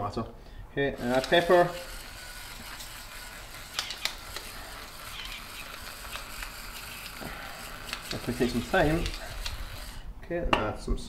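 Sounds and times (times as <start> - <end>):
pepper mill clicks: 1.0 - 10.0
pepper mill grinding: 1.0 - 10.1.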